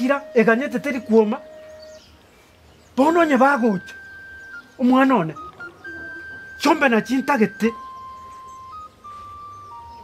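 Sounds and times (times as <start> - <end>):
melody of long held tones: 0.0 - 10.0.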